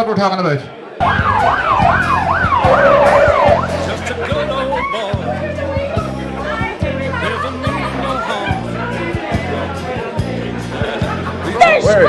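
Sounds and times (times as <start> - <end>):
police siren wailing: 1.0 - 5.1.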